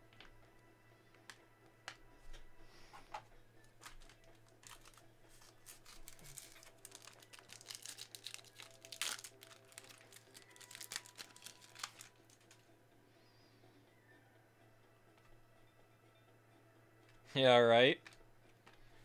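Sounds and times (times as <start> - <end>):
foil wrapper crinkling and tearing: 3.9 - 12.6.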